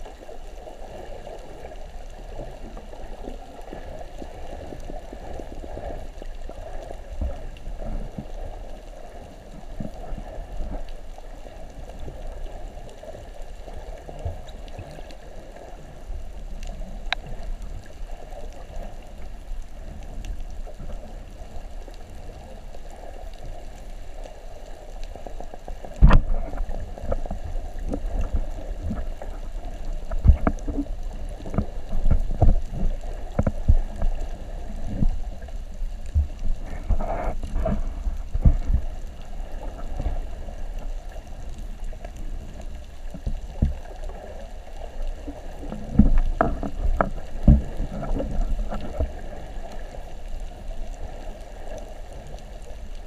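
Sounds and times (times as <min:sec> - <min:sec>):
muffled underwater water wash: 0:00.0 - 0:53.0.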